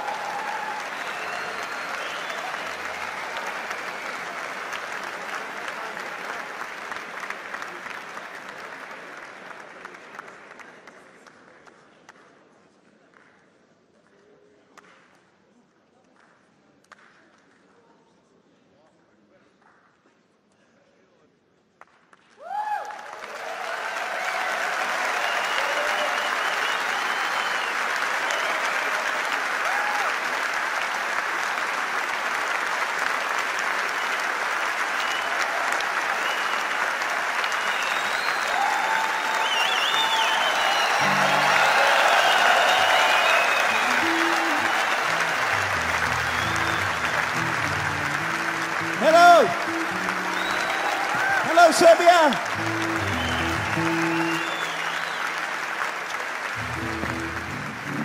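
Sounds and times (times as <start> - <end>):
loud shout: 0.0 - 4.1, 22.4 - 27.5, 28.3 - 30.2, 38.4 - 47.3, 48.8 - 54.7
crowd cheering: 0.0 - 9.9, 22.4 - 58.0
audience applauding: 0.0 - 12.2, 22.1 - 58.0
whistles: 0.5 - 4.4, 25.1 - 28.9, 34.9 - 35.5, 36.1 - 36.8, 37.4 - 47.8, 49.7 - 51.8, 52.8 - 55.6
low stepping music notes: 56.6 - 58.0.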